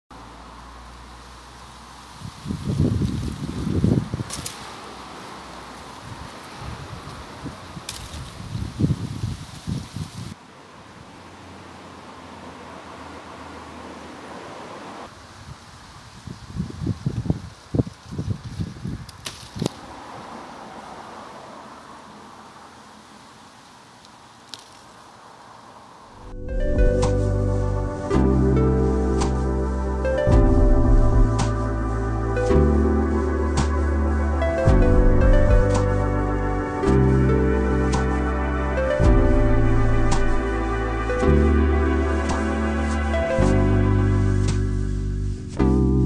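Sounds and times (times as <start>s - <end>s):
steady hiss: 0.1s - 11.4s, 14.3s - 20.2s, 21.7s - 26.2s
wind buffeting microphone: 2.1s - 4.6s, 5.8s - 10.4s, 15.3s - 20.4s.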